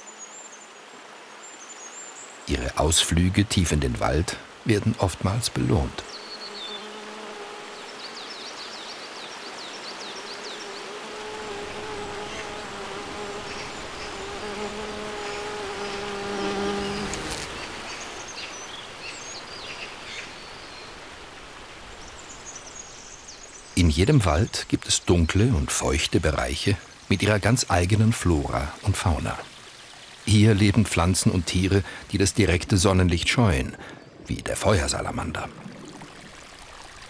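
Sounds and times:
bumblebee buzzing: 0:05.8 - 0:08.8, 0:09.6 - 0:18.4
stream rushing: 0:16.8 - 0:24.7, 0:25.6 - 0:37.0.

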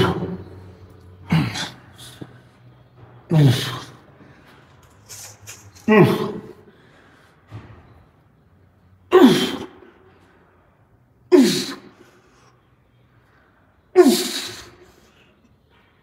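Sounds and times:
man grunting with effort: 0:01.2 - 0:02.1.

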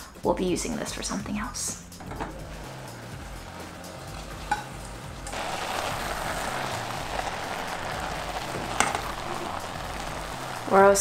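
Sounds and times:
vegetables sizzling in a pot: 0:02.0 - 0:11.0.

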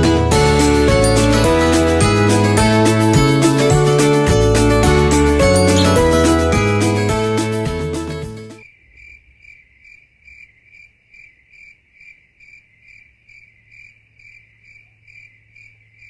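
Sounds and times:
background music: 0:00.0 - 0:08.6
cricket chirping: 0:08.6 - 0:16.0.

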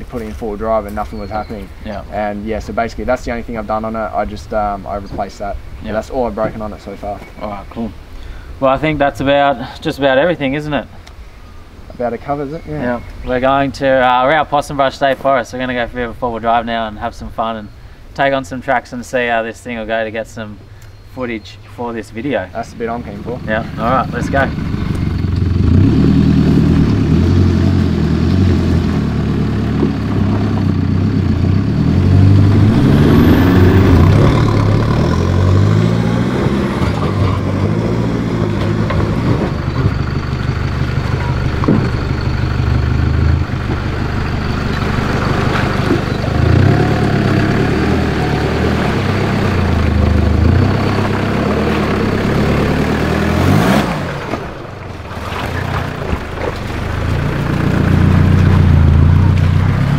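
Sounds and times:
diesel engine revving off-road: 0:22.2 - 0:59.9.

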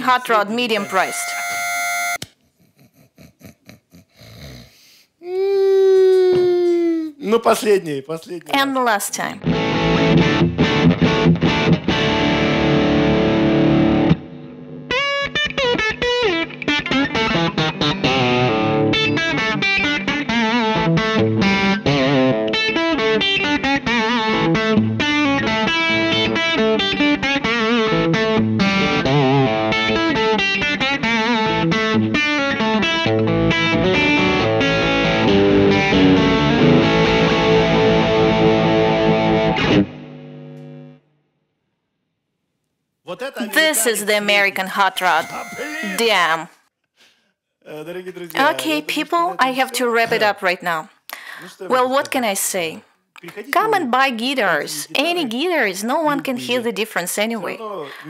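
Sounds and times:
overdriven electric guitar: 0:00.6 - 0:02.2, 0:09.4 - 0:41.0.

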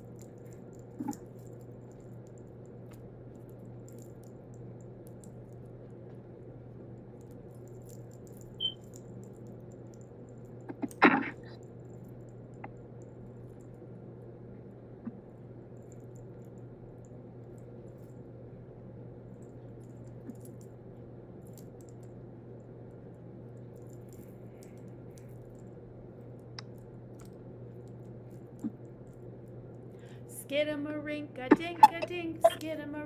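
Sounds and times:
low hum: 0:00.0 - 0:33.0.

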